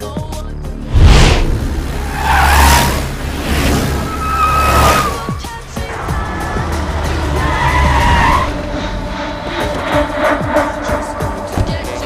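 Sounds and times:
dramatic background music: 0.5 - 12.0.

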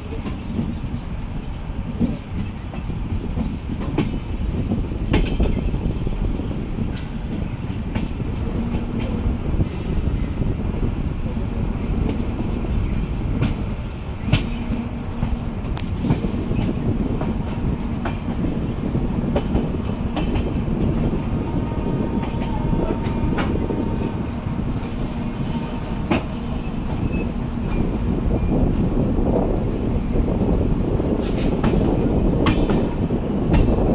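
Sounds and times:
train rumble: 0.0 - 33.9
wheels clacking on track: 0.0 - 33.9.

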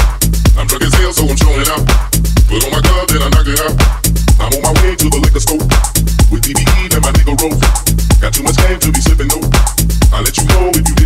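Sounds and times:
house music dance beat: 0.0 - 11.0.

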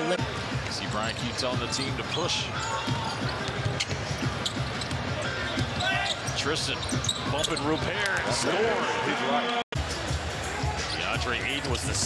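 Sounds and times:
sneaker squeak: 2.6 - 8.0.

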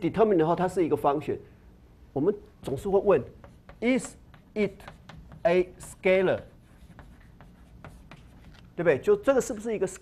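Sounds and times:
man speaking: 2.1 - 6.6, 8.8 - 10.0
chalk writing on blackboard: 2.6 - 8.8.

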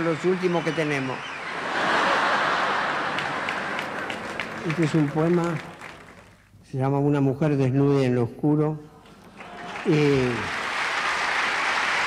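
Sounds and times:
audience applauding: 0.0 - 6.5, 9.3 - 12.0.

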